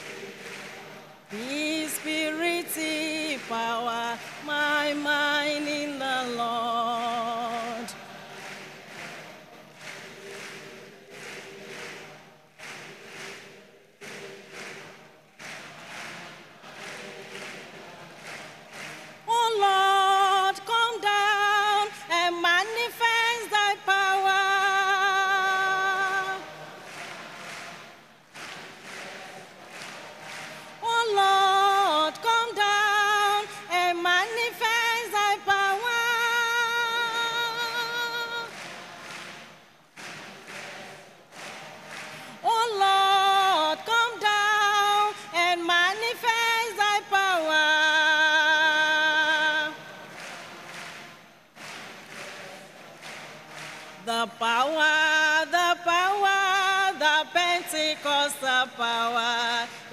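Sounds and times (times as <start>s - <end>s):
soft hand clapping: 0.0s - 47.7s, 48.6s - 56.4s
person singing with vibrato: 0.0s - 59.9s.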